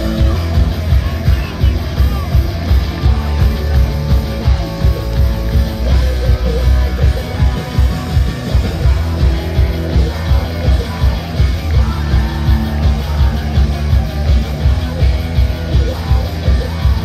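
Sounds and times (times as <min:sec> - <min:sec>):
distorted electric guitars: 0:00.0 - 0:17.0
drums beating: 0:00.0 - 0:17.0.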